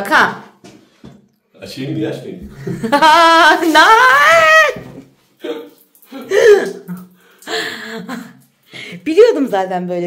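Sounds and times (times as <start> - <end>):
woman shrieking: 3.0 - 5.0.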